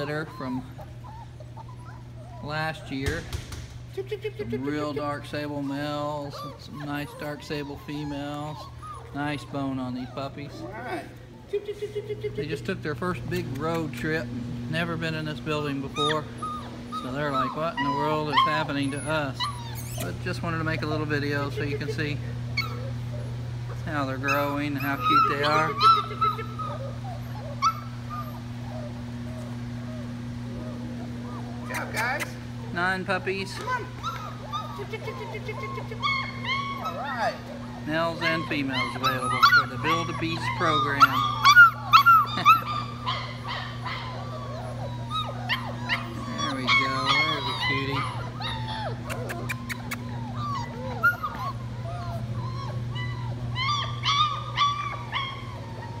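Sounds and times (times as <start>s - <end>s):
puppies whimpering: 0.0s - 56.0s
steady low hum: 0.0s - 56.0s
puppy yip: 16.0s - 20.1s, 24.3s - 30.0s, 33.6s - 56.0s.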